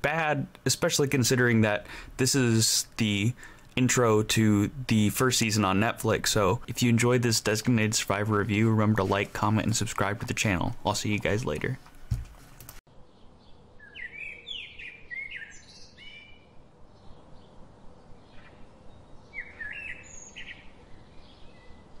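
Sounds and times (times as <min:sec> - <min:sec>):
faint steady background hiss: 0:00.0 - 0:22.0
small birds chirping: 0:12.9 - 0:22.0.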